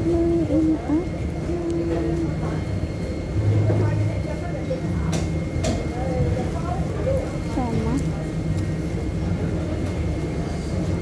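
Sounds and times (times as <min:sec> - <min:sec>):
steady low hum: 0:00.0 - 0:11.0
voices of shoppers and vendors: 0:00.0 - 0:11.0.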